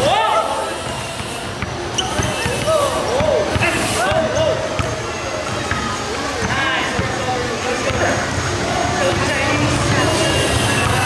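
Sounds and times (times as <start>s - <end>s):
basketball dribbling on concrete: 0.8s - 9.9s.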